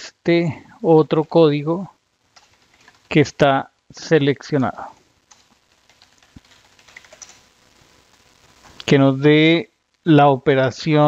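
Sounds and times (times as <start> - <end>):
typing on computer keyboard: 2.3 - 3.1, 5.3 - 7.4.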